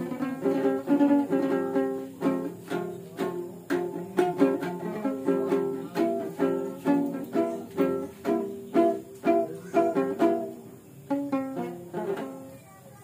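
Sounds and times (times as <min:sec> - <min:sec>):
ukulele strumming: 0:00.0 - 0:12.8.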